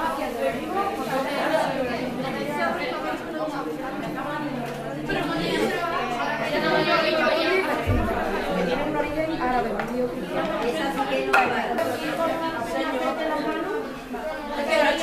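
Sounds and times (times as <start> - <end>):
students chattering: 0.0 - 15.0.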